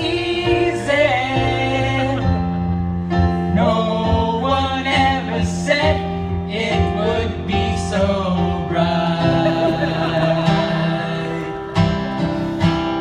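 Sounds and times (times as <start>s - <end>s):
man singing into a microphone: 0.0s - 12.1s
acoustic guitar: 0.0s - 13.0s
keyboard: 0.0s - 13.0s.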